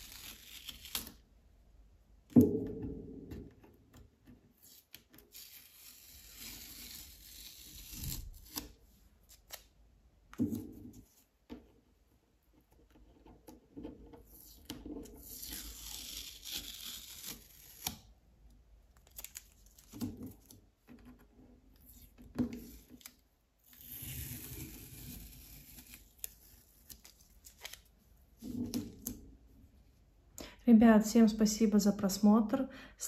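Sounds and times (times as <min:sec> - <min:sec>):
adhesive tape peeling off paper: 0:00.0 - 0:01.2, 0:04.6 - 0:09.7, 0:14.4 - 0:18.1, 0:19.0 - 0:20.5, 0:21.8 - 0:27.9
tape and paper crinkling: 0:18.9 - 0:20.7, 0:21.8 - 0:29.2.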